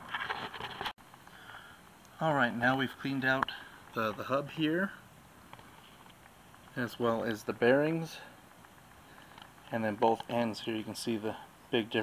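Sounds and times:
quiet steady hiss: 1.0 - 12.0
faint scraping and rustling: 2.8 - 11.5.

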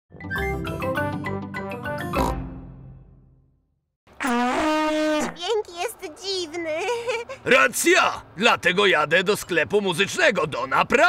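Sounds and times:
cartoon theme tune: 0.1 - 3.6.

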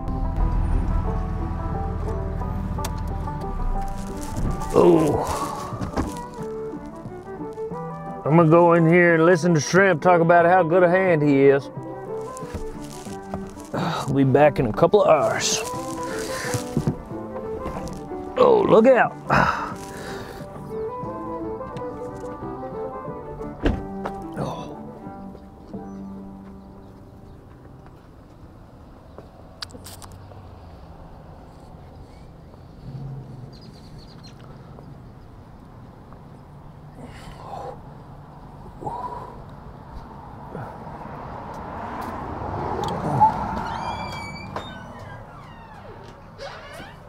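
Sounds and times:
vehicle passing: 0.0 - 9.2, 11.4 - 46.4
background music: 0.0 - 28.6
truck door shutting: 23.4 - 24.3.

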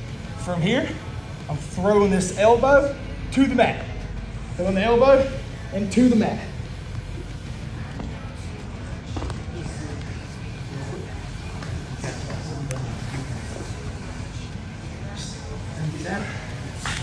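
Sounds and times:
steady low hum: 0.0 - 17.0
faint background voices: 7.1 - 17.0.

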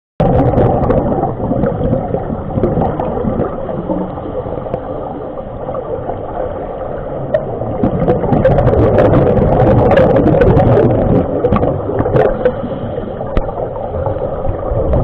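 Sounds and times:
underwater bubbling of exhaled air: 0.2 - 15.0.

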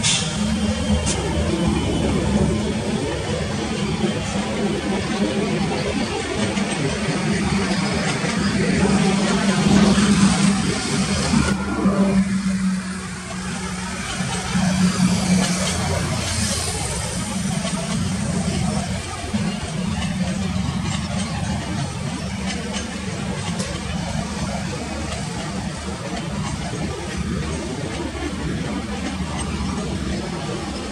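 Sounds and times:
distant passenger train passing: 0.0 - 30.9.

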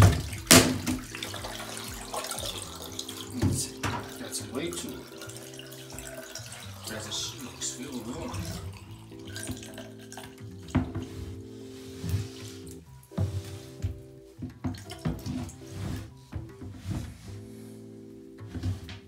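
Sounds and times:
tap water running: 0.0 - 17.4
background music with held chords: 0.0 - 19.0.

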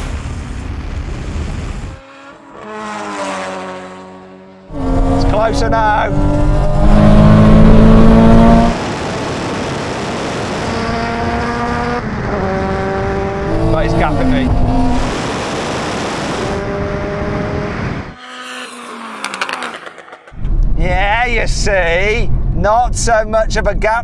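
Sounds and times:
car engines accelerating: 1.1 - 20.6
gear change: 16.1 - 20.8.

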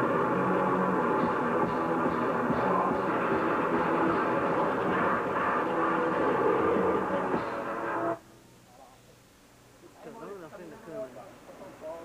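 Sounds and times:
distorted electric guitars and bass: 0.0 - 8.2.

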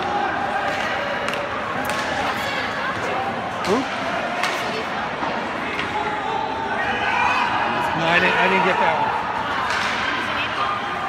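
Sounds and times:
murmur of spectators: 0.0 - 11.0
hockey sticks and puck knocking: 0.6 - 2.3, 9.6 - 10.0.

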